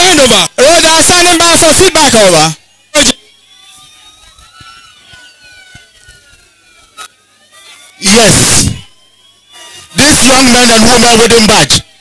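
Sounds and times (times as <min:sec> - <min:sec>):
faint police sirens wailing: 0:01.0 - 0:12.0.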